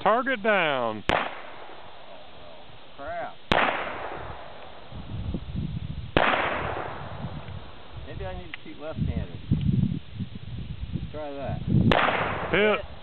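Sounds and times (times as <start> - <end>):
revolver shots echoing: 3.5 - 4.6, 6.2 - 7.1.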